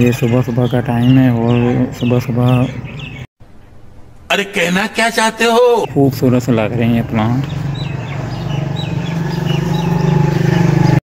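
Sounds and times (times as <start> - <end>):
small birds chirping: 0.0 - 3.3, 5.4 - 11.0.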